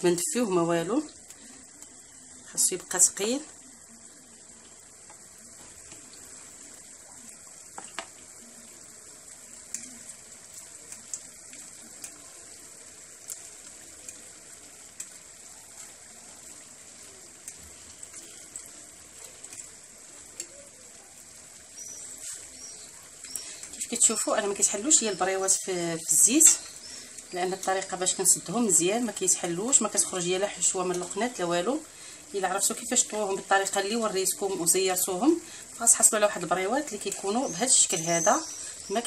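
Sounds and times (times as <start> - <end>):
food frying in hot oil: 0.0 - 39.0.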